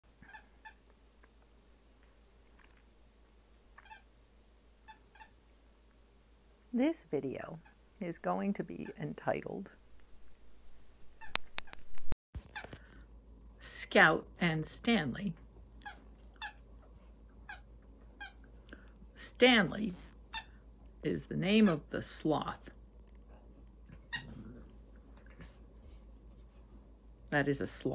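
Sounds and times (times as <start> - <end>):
faint squeaky toy squeaks: 0.2 - 0.8, 3.8 - 4.1, 4.8 - 5.4.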